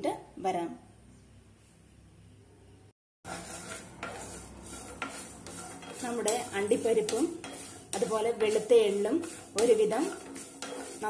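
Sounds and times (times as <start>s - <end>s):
wooden spatula scraping nuts in pan: 3.3s - 11.0s.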